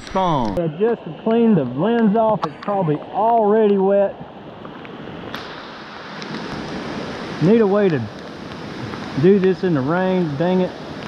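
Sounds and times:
heavy rain on a stream: 0.6s - 11.0s.

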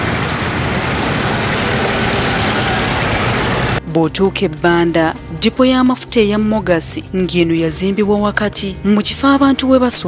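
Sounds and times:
road traffic engine and tyre noise: 0.0s - 3.8s.

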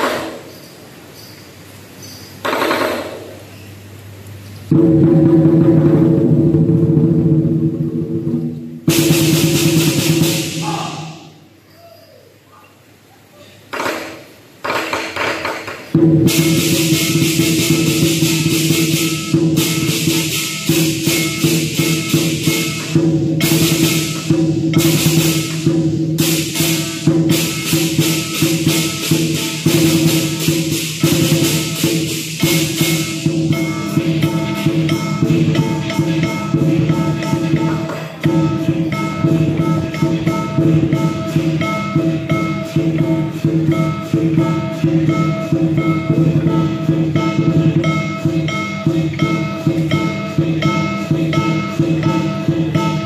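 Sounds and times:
cymbals crashing: 0.0s - 3.8s, 4.6s - 11.7s, 13.7s - 53.0s
fast drum roll: 4.7s - 11.4s, 13.8s - 53.0s
gong ringing: 16.0s - 53.0s.

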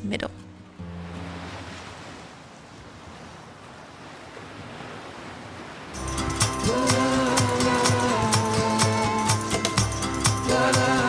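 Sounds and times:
rushing sea surf: 0.8s - 11.0s
music with a beat: 6.0s - 11.0s.

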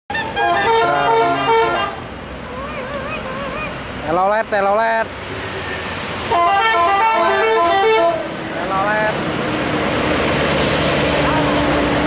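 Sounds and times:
bus air horn playing a tune: 0.1s - 2.1s, 6.3s - 8.3s.

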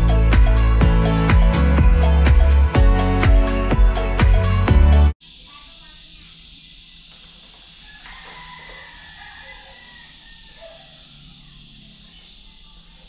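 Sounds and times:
steady hiss: 5.2s - 13.0s.

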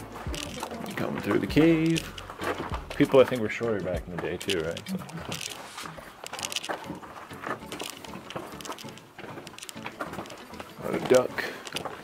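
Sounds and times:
footsteps and scuffing: 0.0s - 12.0s
faint murmuring: 3.3s - 6.6s.

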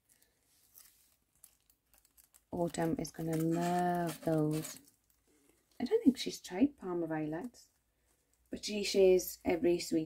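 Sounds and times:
gift bag rustling: 0.0s - 5.6s.

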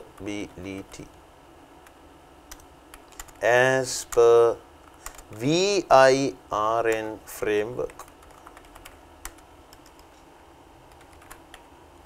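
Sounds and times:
keystrokes on computer keyboard: 1.8s - 3.4s, 4.8s - 5.3s, 7.8s - 10.2s, 10.9s - 11.7s.

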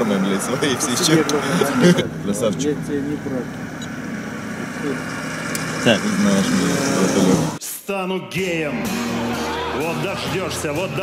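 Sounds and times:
car idling: 0.0s - 7.6s
men talking: 0.0s - 9.1s, 9.7s - 11.0s.

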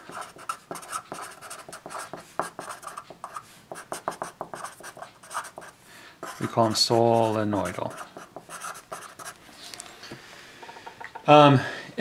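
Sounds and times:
marker scratching on paper: 0.0s - 9.4s.

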